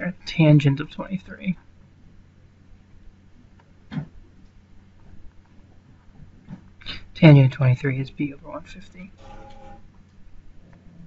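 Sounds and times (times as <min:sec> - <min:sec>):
low steady hum: 0:00.0 - 0:11.0
man's voice: 0:06.9 - 0:09.1.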